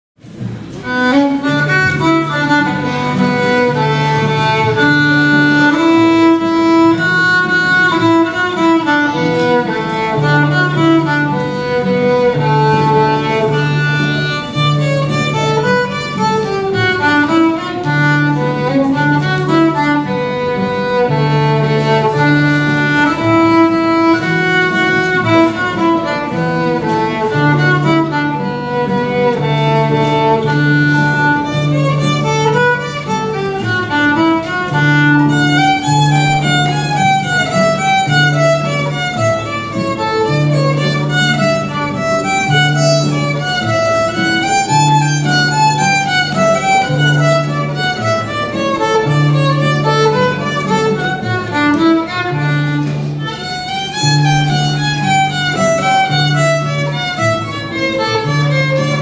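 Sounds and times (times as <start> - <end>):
acoustic guitar chords: 0.2 - 59.0
fiddle playing a tune: 0.2 - 59.0.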